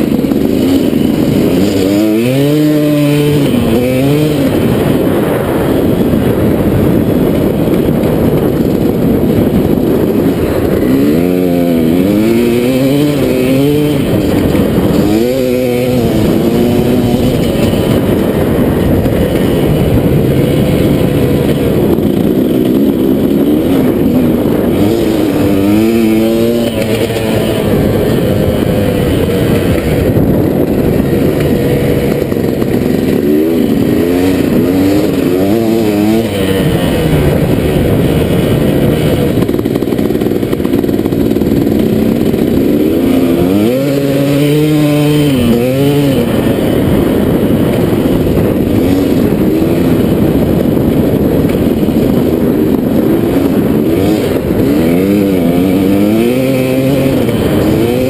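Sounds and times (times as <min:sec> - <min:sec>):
dirt bike engine revving: 0:00.0 - 0:58.0.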